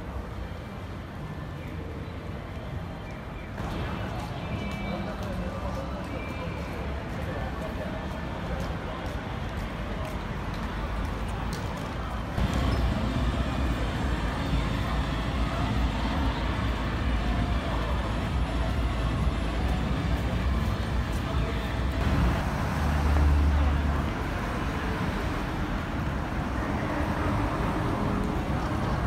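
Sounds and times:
street traffic hum: 0:00.0 - 0:29.0.

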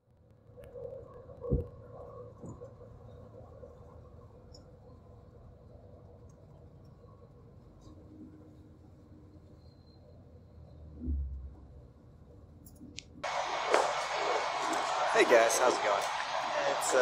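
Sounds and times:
loud noisy background: 0:13.2 - 0:17.0.

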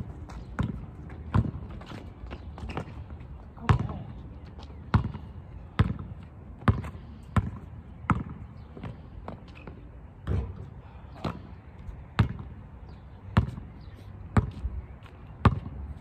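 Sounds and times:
basketball bouncing on asphalt: 0:00.0 - 0:16.0.

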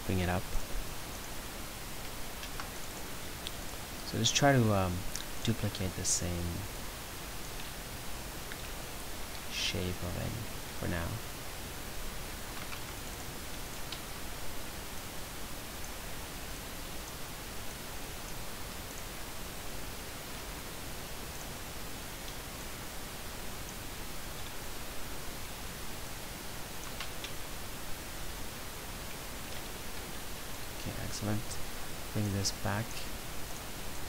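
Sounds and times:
microphone hiss: 0:00.0 - 0:34.0
faint mouse clicks: 0:26.8 - 0:27.4.

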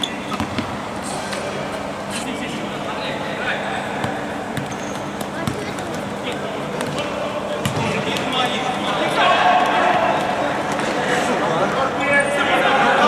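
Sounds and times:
players' voices and shouts: 0:02.4 - 0:13.0
ball kicked on hard court: 0:04.0 - 0:05.9, 0:07.6 - 0:08.0.

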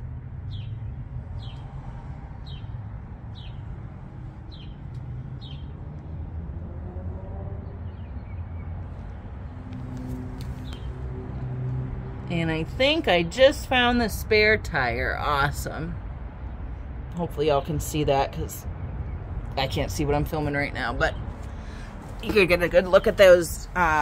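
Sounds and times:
steady low rumble: 0:00.0 - 0:06.7.

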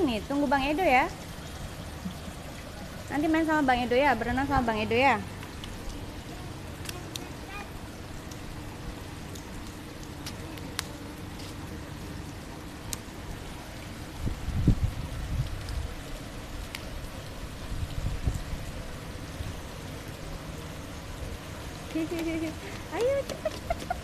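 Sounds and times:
pool water lapping: 0:00.0 - 0:24.0
water drip ticks: 0:00.0 - 0:24.0.

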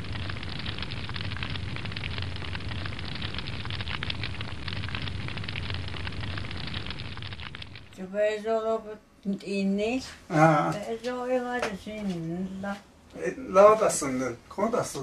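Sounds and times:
wood fire crackling: 0:00.0 - 0:08.0.

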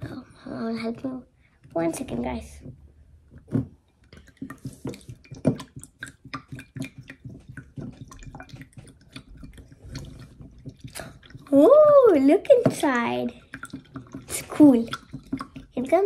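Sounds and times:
liquid sloshing and dripping: 0:00.8 - 0:16.0.

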